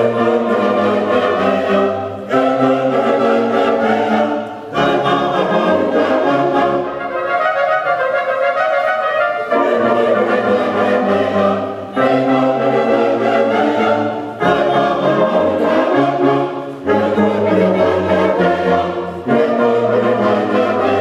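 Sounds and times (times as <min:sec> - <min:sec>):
brass band playing chords: 0:00.0 - 0:21.0.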